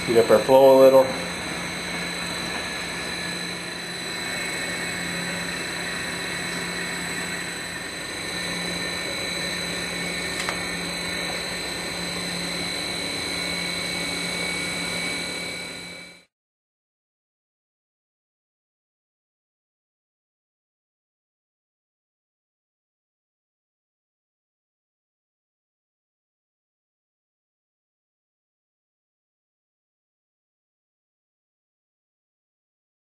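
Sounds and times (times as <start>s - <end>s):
mixer motor humming with whine: 0.0s - 16.3s.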